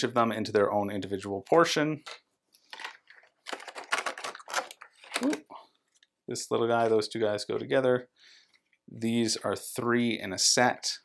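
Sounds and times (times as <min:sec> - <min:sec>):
plastic pieces clicking and scraping: 0:02.0 - 0:06.1.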